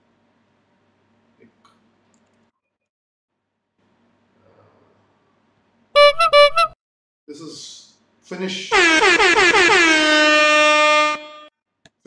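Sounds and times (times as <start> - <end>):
loud horn blast: 6.0 - 6.8, 8.7 - 11.6.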